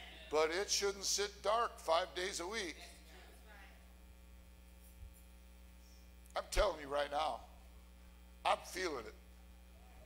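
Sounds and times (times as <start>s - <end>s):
faint electrical mains hum: 0.0s - 10.0s.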